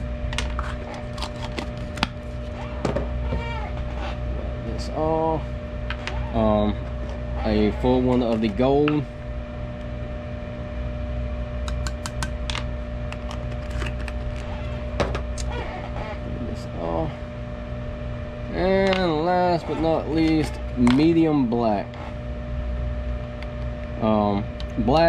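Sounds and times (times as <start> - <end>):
electric fan humming: 0.0 - 25.0.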